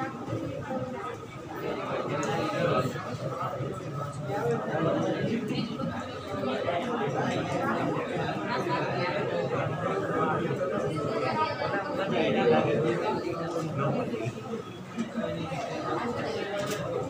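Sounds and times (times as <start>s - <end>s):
murmur of indistinct chatter: 0.0s - 17.0s.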